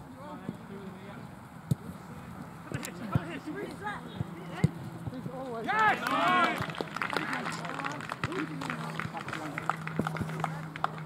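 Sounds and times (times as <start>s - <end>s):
players calling and talking: 0.0s - 11.0s.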